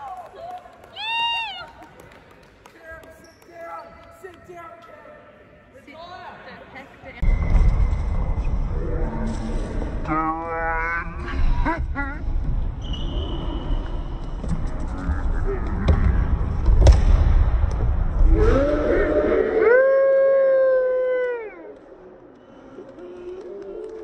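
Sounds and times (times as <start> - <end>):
low rumble: 7.2 - 19.0.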